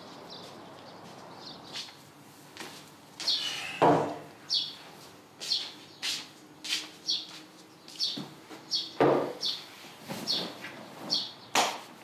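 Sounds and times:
bird chirping: 3.2 - 3.8, 4.4 - 4.9, 7.0 - 11.6.

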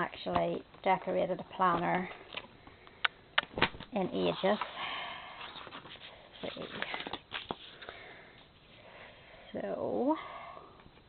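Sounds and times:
paper pages rustling: 5.4 - 7.9.

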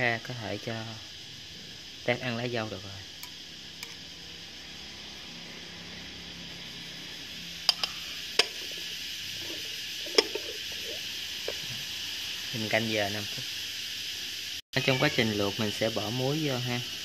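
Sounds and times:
steady faint hiss: 7.7 - 17.0
porcelain plate clinking: 9.4 - 11.0.

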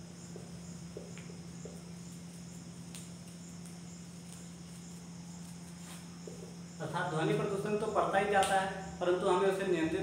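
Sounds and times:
high-pitched insect chirping: 0.0 - 10.0.

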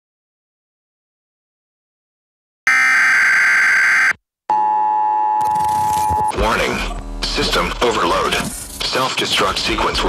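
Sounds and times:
high steady phone-line tone: 2.7 - 6.4.

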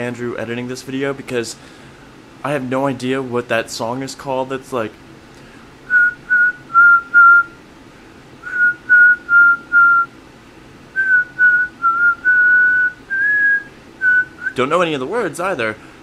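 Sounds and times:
man whistling a tune: 5.9 - 7.6, 8.4 - 10.1, 11.0 - 14.6.

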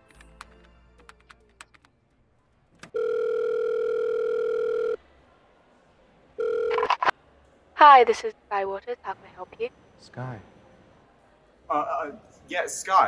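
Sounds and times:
telephone ringback tone: 3.0 - 5.0, 6.4 - 7.0.

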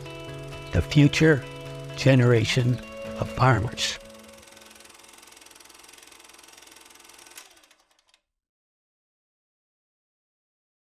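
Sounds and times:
fast mechanical rattle: 0.0 - 8.2.

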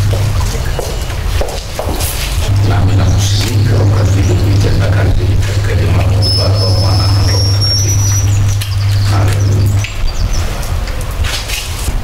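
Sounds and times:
electrical hum through microphone: 0.0 - 12.0
thin high whistle: 6.1 - 9.4.

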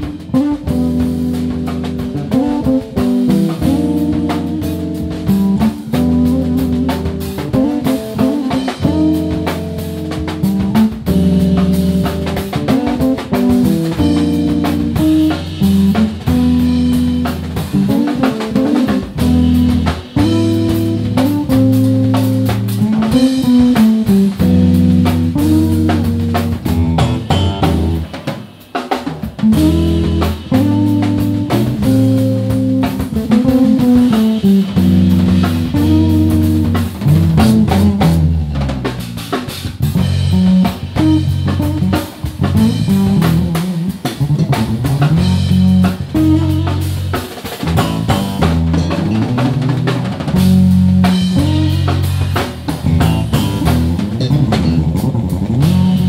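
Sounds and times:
drum kit groove: 0.0 - 56.0
electric bass guitars: 0.0 - 56.0.

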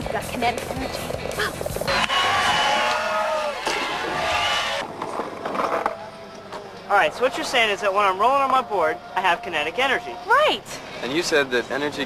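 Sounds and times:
skateboard wheels rolling on pavement: 0.0 - 6.8
people shouting: 1.9 - 4.8.

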